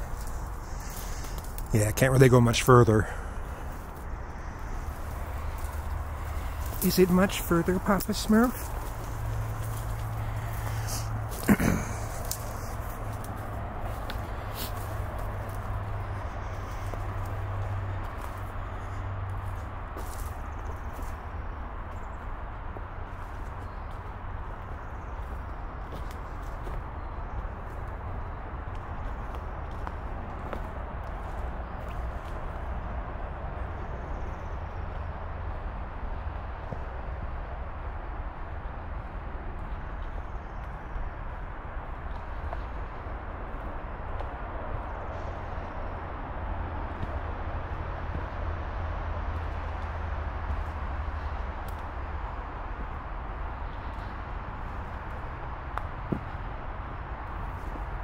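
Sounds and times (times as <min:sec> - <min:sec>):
footsteps on leafy dirt trail: 0:00.0 - 0:58.0.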